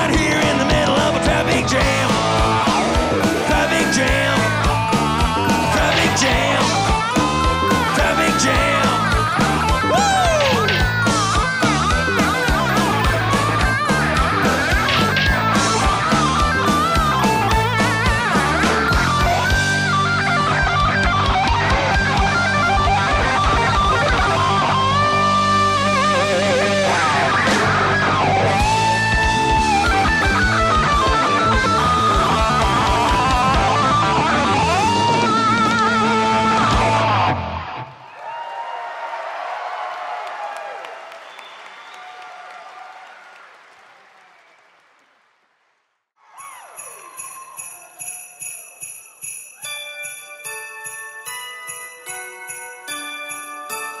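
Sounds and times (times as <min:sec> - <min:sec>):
live rock band playing: 0:00.0 - 0:37.8
electric guitar lead: 0:00.0 - 0:38.0
crowd noise: 0:00.0 - 0:50.8
sleigh bells jingling: 0:01.3 - 0:18.5, 0:46.3 - 0:54.0
chiming bell-like notes: 0:46.4 - 0:54.0.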